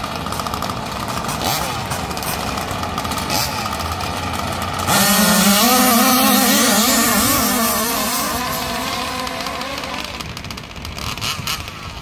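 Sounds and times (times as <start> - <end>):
small two-stroke engines revving: 0.0 - 12.0.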